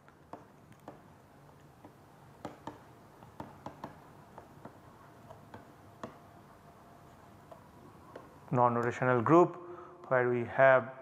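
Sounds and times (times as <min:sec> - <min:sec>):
stylus tapping on tablet: 0:00.0 - 0:08.9.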